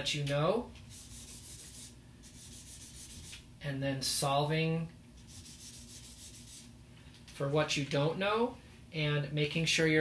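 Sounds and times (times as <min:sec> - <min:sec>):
marker rubbing on paper: 0:00.9 - 0:03.4, 0:05.2 - 0:06.7.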